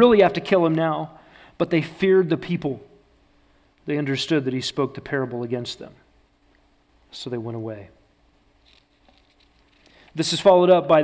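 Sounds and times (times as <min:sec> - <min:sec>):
faint steady hum: 0:00.0 - 0:11.0
soft rustle: 0:08.5 - 0:10.2.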